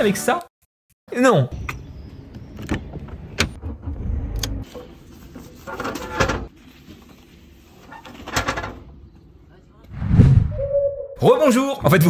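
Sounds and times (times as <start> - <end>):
low rumble: 9.9 - 11.2.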